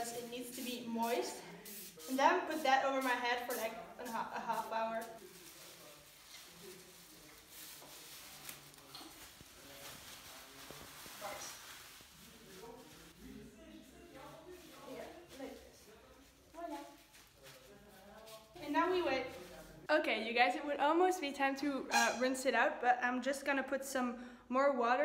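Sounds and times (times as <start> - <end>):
quiet talk: 3.6 - 19.9.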